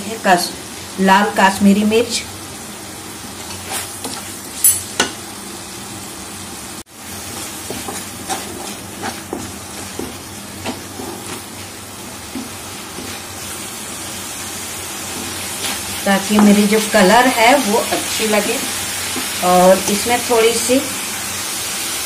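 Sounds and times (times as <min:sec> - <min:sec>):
paste sizzling in hot oil: 0:00.3 - 0:22.0
wooden spatula scraping pan: 0:07.3 - 0:13.6.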